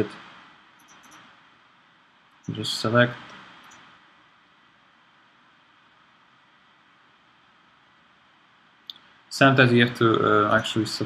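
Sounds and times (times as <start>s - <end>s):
faint recording hiss: 0.0s - 11.0s.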